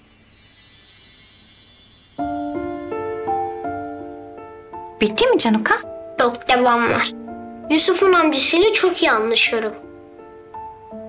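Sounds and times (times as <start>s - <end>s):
faint high hiss: 0.0s - 11.0s.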